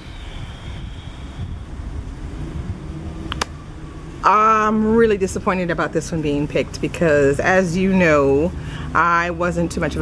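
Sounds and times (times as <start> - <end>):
wind buffeting microphone: 0.0 - 8.6.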